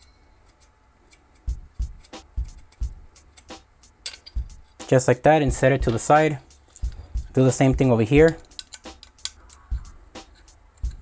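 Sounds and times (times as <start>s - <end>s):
hex key clicking on metal screw: 8.3s - 9.6s.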